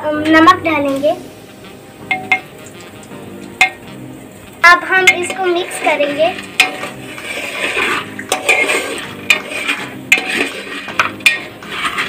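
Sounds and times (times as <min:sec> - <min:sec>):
metal spoon clinking on pot rim: 0:02.1 - 0:02.8, 0:06.5 - 0:07.0, 0:08.2 - 0:11.6.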